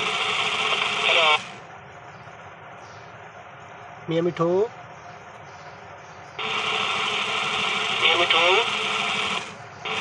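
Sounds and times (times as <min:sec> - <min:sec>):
toy motor whirring: 0:00.0 - 0:01.6, 0:06.4 - 0:10.0
low steady hum: 0:00.0 - 0:10.0
toy voice playback: 0:00.7 - 0:01.6, 0:07.8 - 0:10.0.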